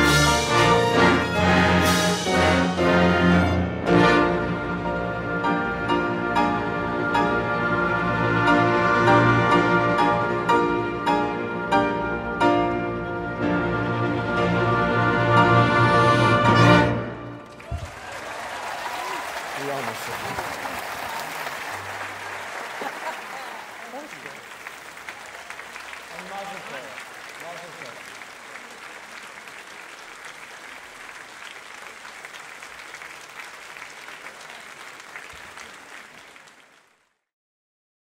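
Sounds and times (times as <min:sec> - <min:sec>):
orchestral piece with piano: 0:00.0 - 0:17.8
audience applauding: 0:17.4 - 0:37.2
crowd shouts: 0:17.6 - 0:21.9.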